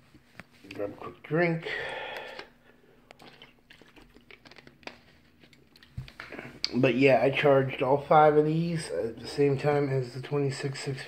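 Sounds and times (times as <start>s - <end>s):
plastic water bottle crinkling: 3.1s - 6.5s.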